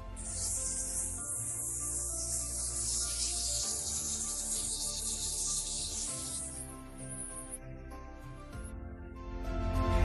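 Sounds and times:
steady high hiss: 0:00.0 - 0:07.6
music with slow sustained notes: 0:00.0 - 0:10.0.

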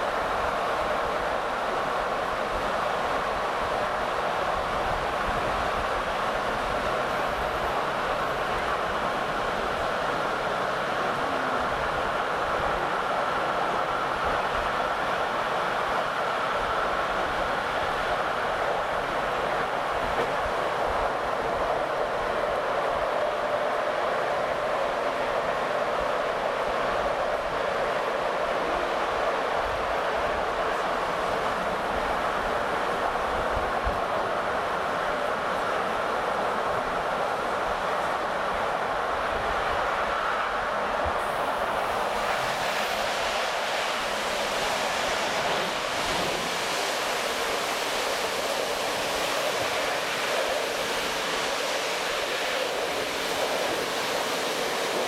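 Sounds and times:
train running noise inside carriage: 0:00.0 - 0:55.0.

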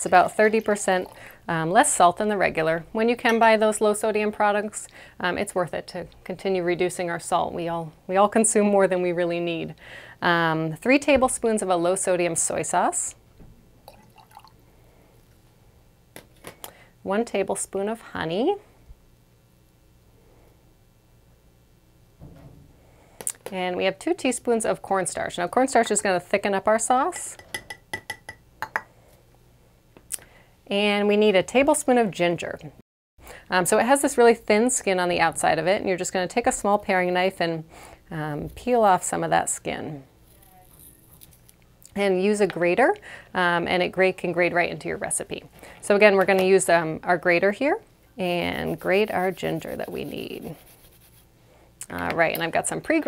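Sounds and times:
liquid trickling into jar: 0:13.9 - 0:14.6.

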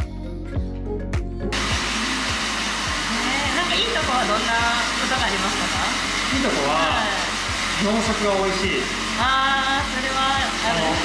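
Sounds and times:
background music with steady beat: 0:00.0 - 0:11.0
hair dryer blowing: 0:01.5 - 0:11.0.

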